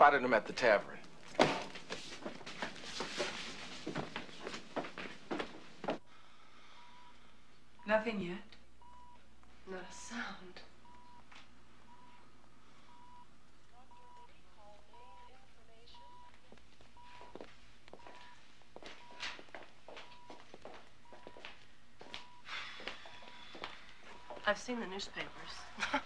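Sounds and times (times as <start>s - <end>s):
patient monitor beeping: 4.1s - 26.0s.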